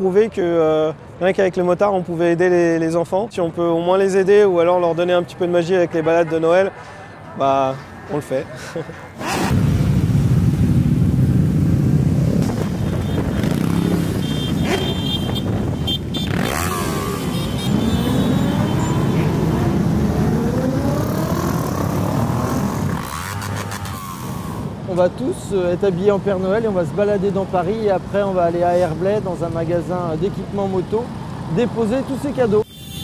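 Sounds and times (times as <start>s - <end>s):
motorcycles revving: 7.4s - 25.0s.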